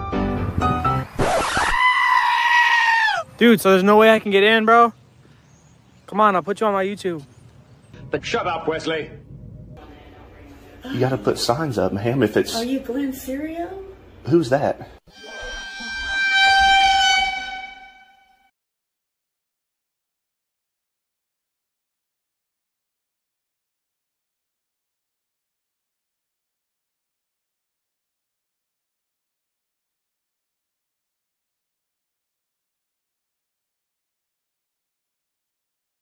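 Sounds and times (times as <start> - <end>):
long high-pitched scream: 1.4 - 3.3, 15.1 - 18.5
high buzzy horn note: 15.1 - 18.5.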